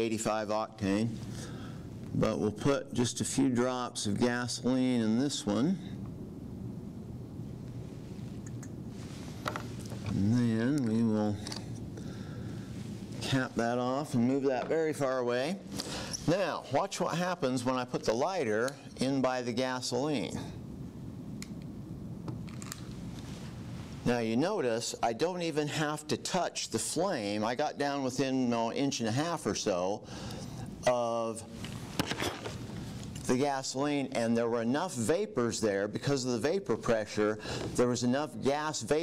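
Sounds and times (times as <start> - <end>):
steady low hum: 0.0 - 39.0.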